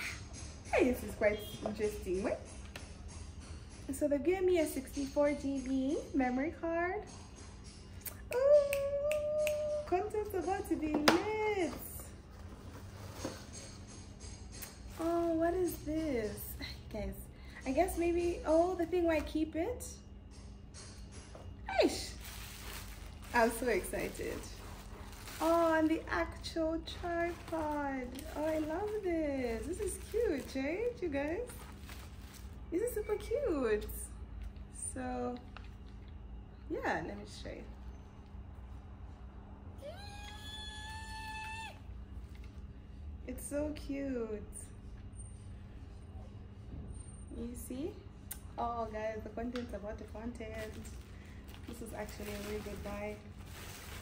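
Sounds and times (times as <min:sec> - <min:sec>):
low steady hum: 0:00.0 - 0:54.0
plastic packaging rustling: 0:11.8 - 0:13.8, 0:21.8 - 0:33.5, 0:50.3 - 0:54.0
woman squealing: 0:39.8 - 0:41.9.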